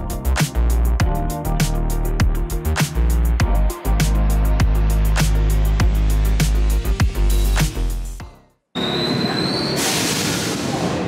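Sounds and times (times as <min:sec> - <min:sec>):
hiss: 0:09.8 - 0:10.8.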